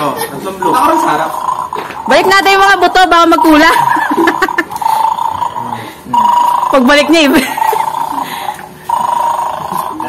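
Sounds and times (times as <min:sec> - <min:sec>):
electronic buzzing tone: 0:00.6 - 0:10.0.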